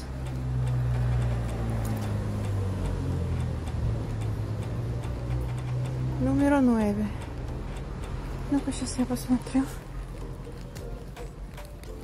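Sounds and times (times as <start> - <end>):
dripping rain ticks: 0.0 - 12.0.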